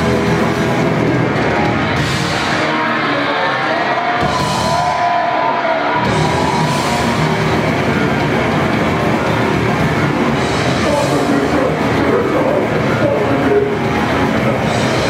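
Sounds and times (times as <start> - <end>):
grindcore band playing live: 0.0 - 15.0.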